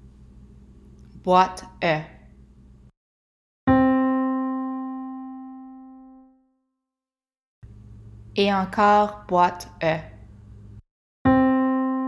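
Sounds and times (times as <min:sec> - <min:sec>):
piano note ringing: 0:03.7 - 0:06.3, 0:11.3 - 0:12.0.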